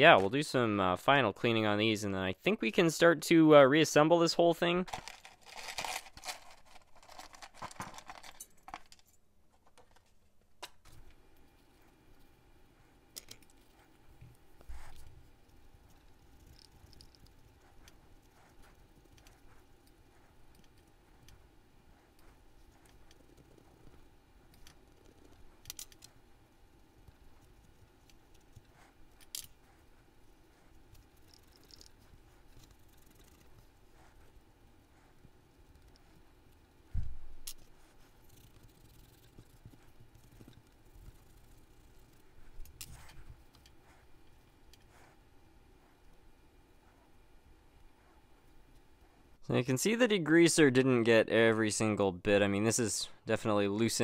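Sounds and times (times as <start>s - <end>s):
metal parts clinking: 4.9s - 9.2s.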